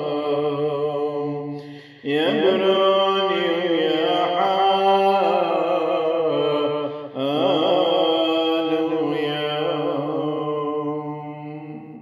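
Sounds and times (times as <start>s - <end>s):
man chanting a hymn: 0.0s - 12.0s.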